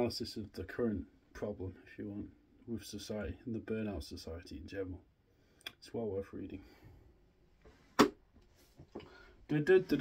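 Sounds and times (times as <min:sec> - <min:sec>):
faint rustling: 0:06.7 - 0:10.0.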